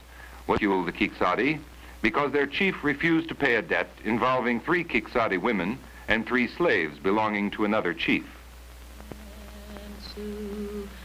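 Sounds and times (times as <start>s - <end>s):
person humming: 8.9s - 11.0s.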